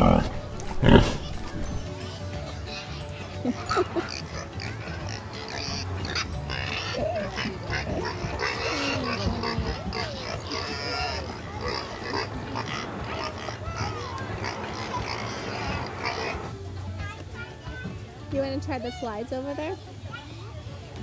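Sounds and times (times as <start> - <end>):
recorded pig grunts: 0.0 - 1.9, 3.6 - 16.4
background voices: 0.0 - 2.0
background music: 0.0 - 21.0.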